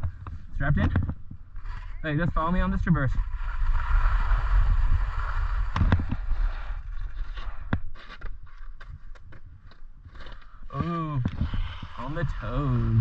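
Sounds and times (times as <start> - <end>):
wind rumbling on microphone: 0.0 - 7.9, 8.9 - 13.0
skis scraping over snow: 1.6 - 8.1, 11.4 - 13.0.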